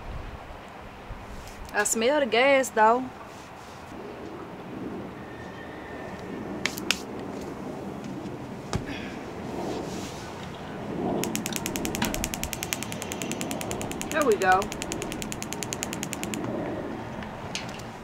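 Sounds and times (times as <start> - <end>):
spark igniter clicking: 11.2 - 16.6.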